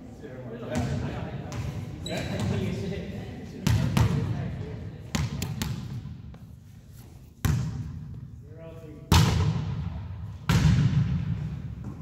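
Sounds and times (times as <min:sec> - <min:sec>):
volleyball thudding in echoing gym: 0:00.6 - 0:12.0.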